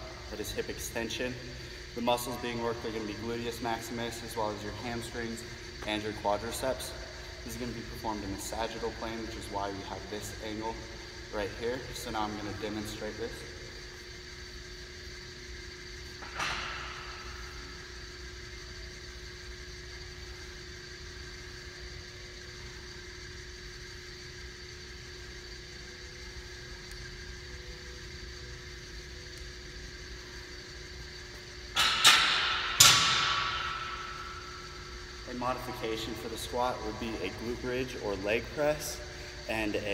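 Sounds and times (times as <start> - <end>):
air handling hum: 0.0 - 39.9.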